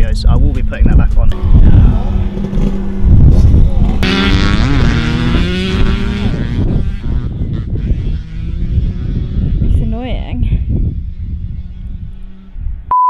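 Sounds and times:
man making wordless sounds: 0.0s - 2.3s
wind buffeting microphone: 0.0s - 12.9s.

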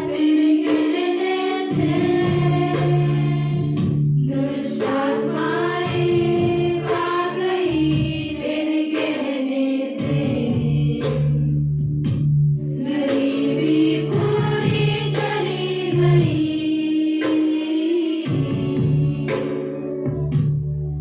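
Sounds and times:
women singing worship song: 0.0s - 11.5s, 12.7s - 19.8s
steady beat: 0.0s - 20.9s.

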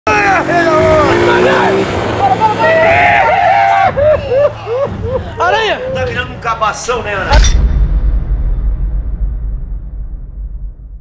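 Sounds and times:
man calling out excitedly: 0.1s - 3.4s, 5.3s - 6.4s
motor scooter engine humming: 0.1s - 5.1s.

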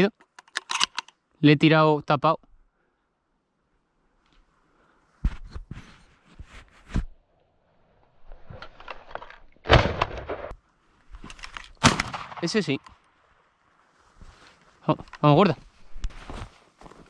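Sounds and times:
shotgun shots: 9.7s - 10.5s, 11.8s - 12.8s
rustling: 12.8s - 17.0s.

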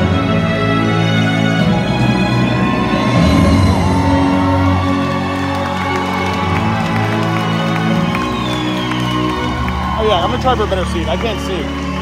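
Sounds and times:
loud concert music: 0.0s - 12.0s
crowd cheering: 1.6s - 12.0s.

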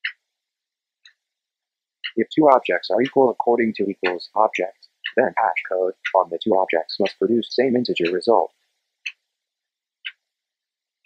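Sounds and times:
clock ticking: 0.0s - 0.3s, 2.0s - 9.3s, 10.0s - 10.3s.

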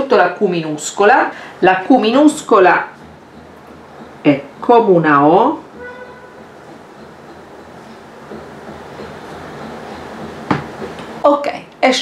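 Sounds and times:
sharp tap: 10.2s - 11.1s.

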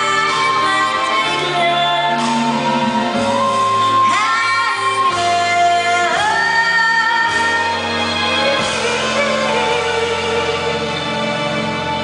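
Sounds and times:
woman singing: 0.0s - 11.8s
band accompaniment: 0.0s - 12.0s.

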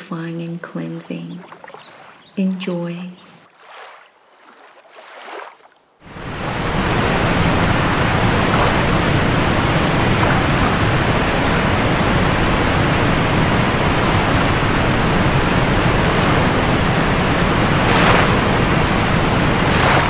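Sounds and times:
waterfall rushing: 6.0s - 20.0s.

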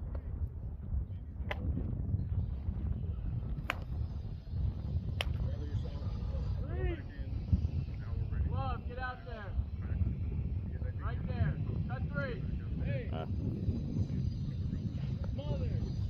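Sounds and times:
wind rumble on microphone: 0.0s - 16.0s
sharp crack: 3.6s - 4.0s, 5.2s - 5.4s.

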